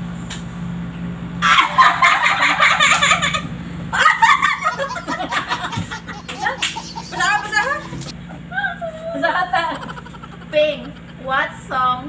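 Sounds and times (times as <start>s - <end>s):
low room hum: 0.0s - 12.0s
women laughing: 1.4s - 11.7s.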